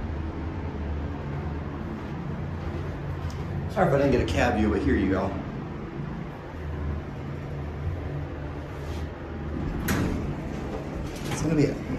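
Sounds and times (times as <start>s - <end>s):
steady low hum: 0.0s - 11.9s
elevator doors sliding open: 1.8s - 11.9s.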